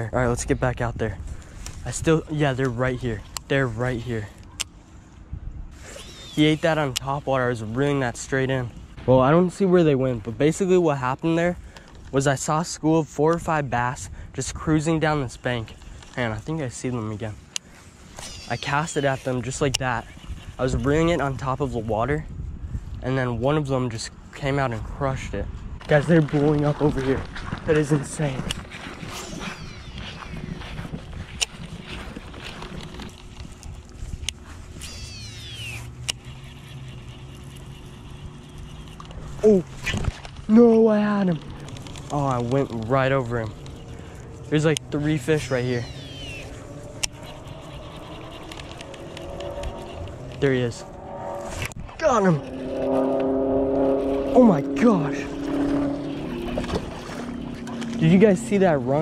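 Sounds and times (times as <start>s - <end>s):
fishing reel spool whining: 5.9s - 6.9s, 18.1s - 21.9s, 27.8s - 59.0s
motor hum: 27.0s - 59.0s
reel clicks: 31.0s - 40.5s, 41.2s - 50.4s.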